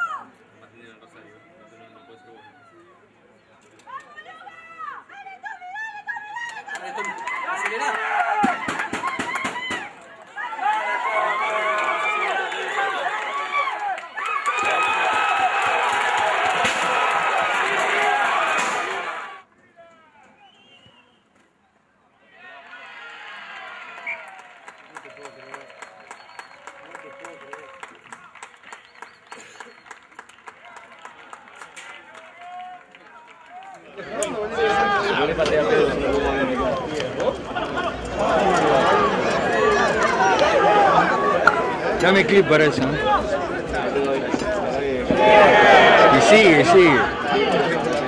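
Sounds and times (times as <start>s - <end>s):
crowd shouting and cheering: 3.9s - 21.0s, 22.2s - 29.4s, 30.5s - 48.0s.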